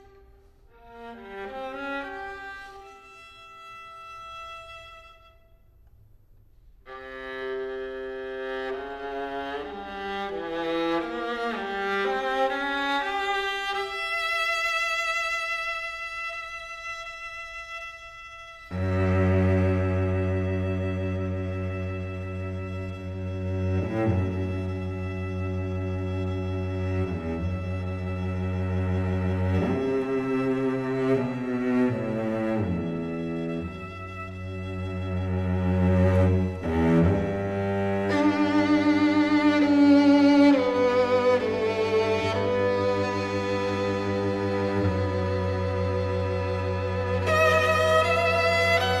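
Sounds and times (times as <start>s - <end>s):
cello low sustained note: 16.3s - 49.0s.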